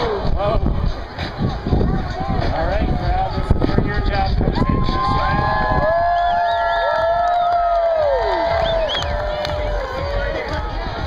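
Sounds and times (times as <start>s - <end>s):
crowd chatter: 0.0s - 11.0s
crowd cheering and whooping: 4.4s - 11.0s.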